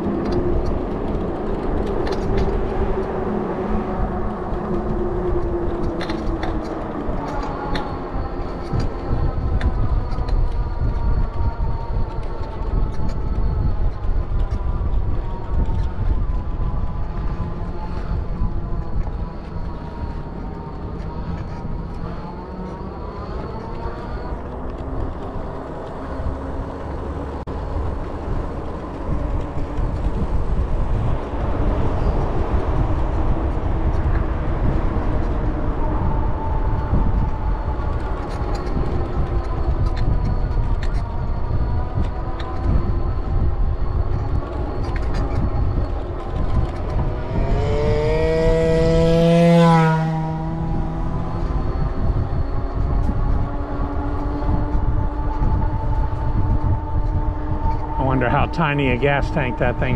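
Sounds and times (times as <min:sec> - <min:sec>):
wind rumbling on microphone: 0:00.0 - 0:59.9
electric motor whine: 0:07.4 - 0:58.0
vehicle passing: 0:45.8 - 0:59.9.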